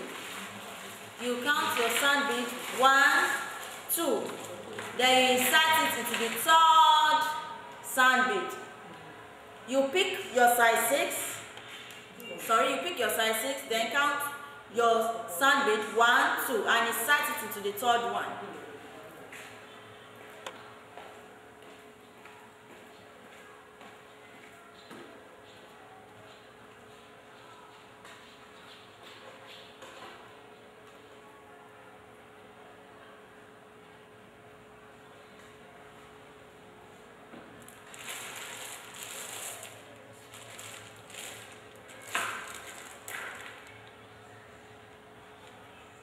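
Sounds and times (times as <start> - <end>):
beads rustling in hands: 37.7 - 43.6.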